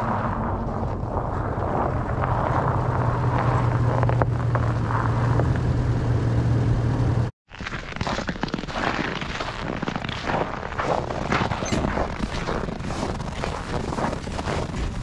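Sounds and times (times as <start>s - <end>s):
truck engine humming: 0.0s - 7.3s
footsteps crunching on snow: 7.5s - 15.0s.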